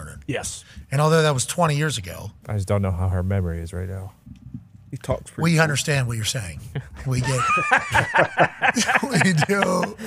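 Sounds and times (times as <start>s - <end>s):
men talking: 0.0s - 4.2s, 4.9s - 10.0s.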